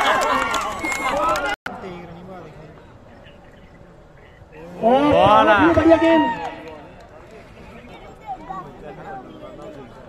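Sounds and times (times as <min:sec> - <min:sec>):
voices shouting: 0:04.6 - 0:06.6.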